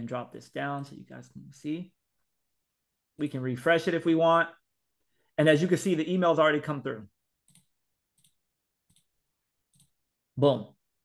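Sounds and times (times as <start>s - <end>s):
faint computer mouse clicks: 7.4s - 9.1s.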